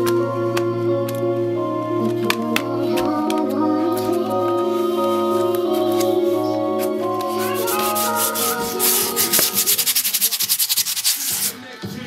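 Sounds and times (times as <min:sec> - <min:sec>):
music: 0:00.0 - 0:12.0
grip tape rasping strokes: 0:07.2 - 0:11.6.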